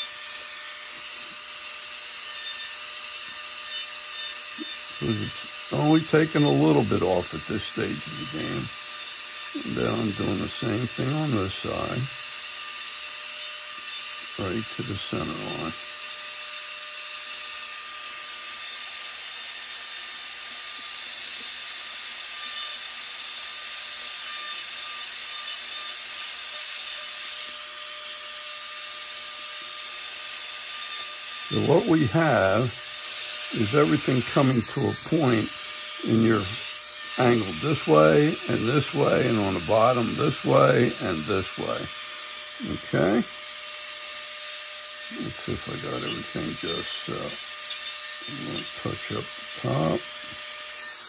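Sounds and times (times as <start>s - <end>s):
rotary tool grinding wood: 0.0s - 51.0s.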